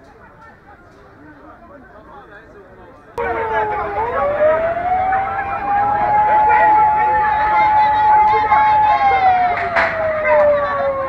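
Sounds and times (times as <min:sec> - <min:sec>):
crowd talking: 0:00.0 - 0:11.0
siren wailing: 0:03.2 - 0:11.0.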